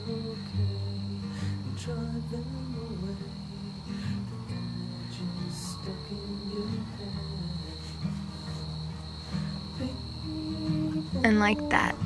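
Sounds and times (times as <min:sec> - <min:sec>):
crickets chirping: 0:00.0 - 0:12.0
soft background music: 0:00.0 - 0:12.0.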